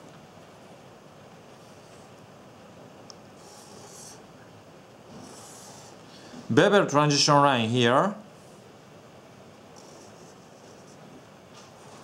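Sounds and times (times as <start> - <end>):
marker strokes on paper: 3.4 - 4.2, 5.1 - 6.0, 9.8 - 11.0.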